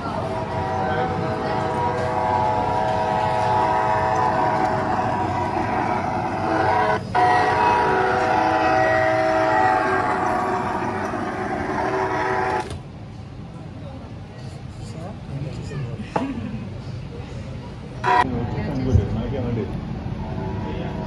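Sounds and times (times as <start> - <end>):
train horn chord: 0.0 - 12.6, 18.0 - 18.4
train running noise: 0.0 - 21.0.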